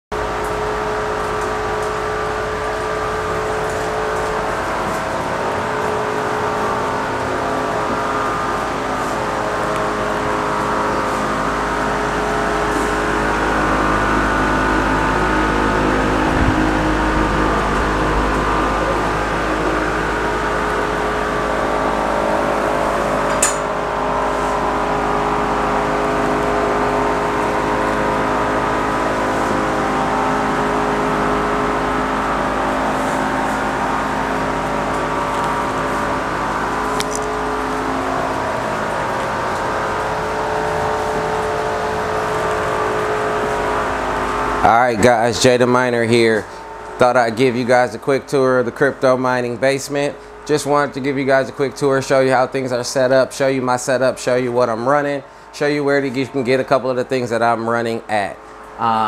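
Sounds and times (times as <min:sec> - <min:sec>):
cooling fans whirring: 0:00.1 - 0:59.0.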